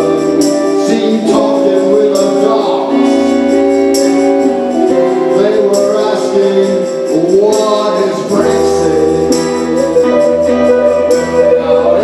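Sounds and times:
drums with tambourine: 0.0 - 12.0
electric bass line: 0.0 - 12.0
electric guitar: 0.0 - 12.0
person singing: 0.0 - 12.0.

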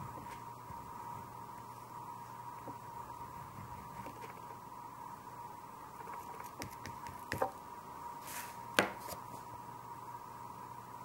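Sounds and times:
pastel sticks clicking and tapping: 6.1 - 7.6.

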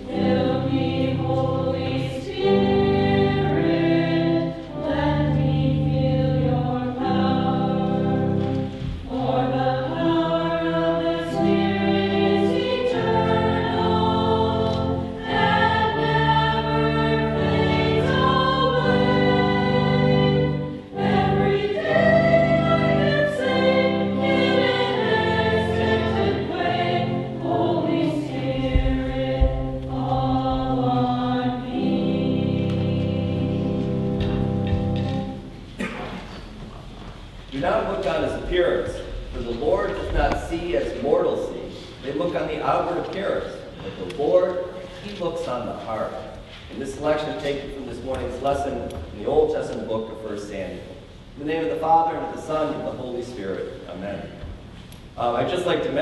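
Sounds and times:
choir singing a hymn: 0.0 - 35.9, 37.6 - 54.5
sustained low accompaniment: 0.0 - 36.7.

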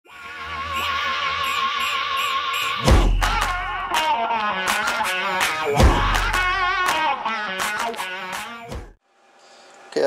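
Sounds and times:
intro music: 2.8 - 8.9.

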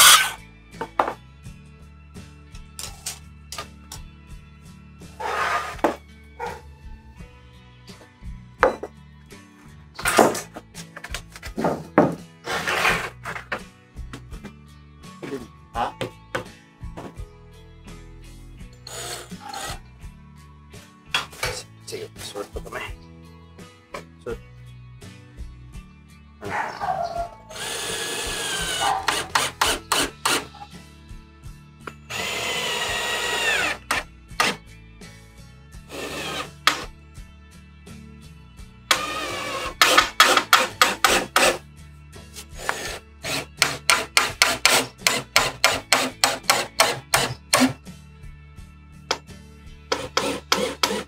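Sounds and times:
cordless drill driving a screw: 0.0 - 0.4, 18.9 - 19.8, 27.5 - 30.5, 32.1 - 34.6, 35.9 - 36.9, 38.9 - 41.6, 42.5 - 47.8, 49.9 - 51.0
background music: 0.0 - 51.0.

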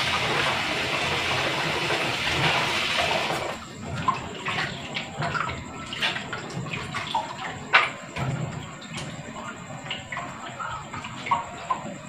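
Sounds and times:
water splashing and dripping: 0.0 - 12.0.

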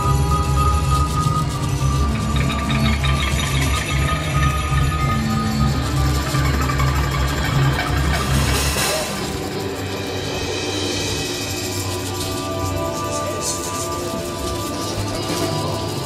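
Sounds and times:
long held synth tones: 0.0 - 16.0.

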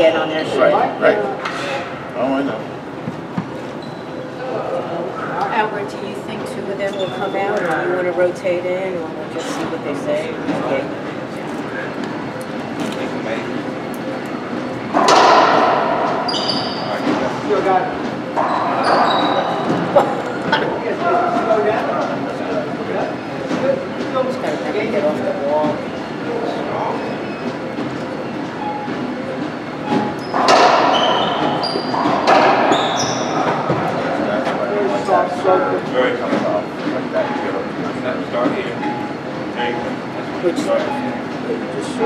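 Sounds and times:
murmured voices: 0.0 - 28.5
sneakers squeaking on hardwood: 3.0 - 4.3, 6.8 - 7.6, 16.0 - 17.3, 18.3 - 20.0, 29.8 - 34.1.

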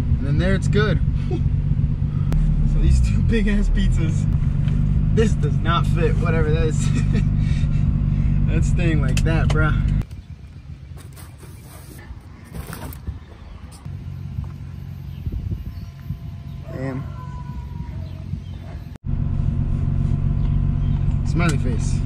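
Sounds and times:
car engine idling: 0.0 - 11.3, 12.0 - 22.0.

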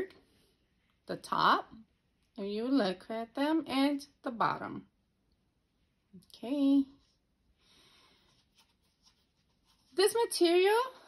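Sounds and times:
hands rustling a shoe: 8.1 - 10.0.

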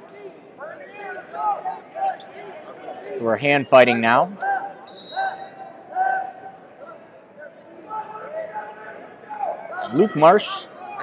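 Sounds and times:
voices shouting in arena: 4.4 - 11.0.

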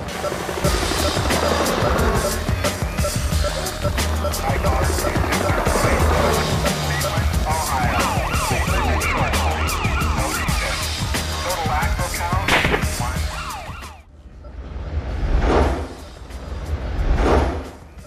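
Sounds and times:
music with steady beat: 0.0 - 14.0
siren-like wail: 4.3 - 11.9, 13.1 - 14.1.

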